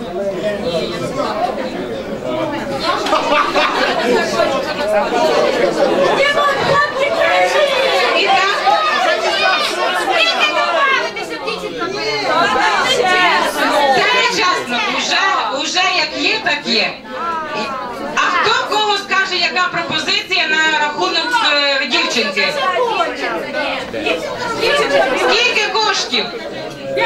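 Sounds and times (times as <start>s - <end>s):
crowd chattering and calling out: 0.0s - 27.0s.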